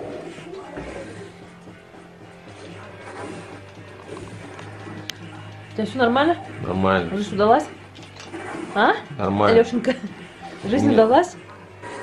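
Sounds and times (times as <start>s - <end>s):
video game music: 0.0s - 12.0s.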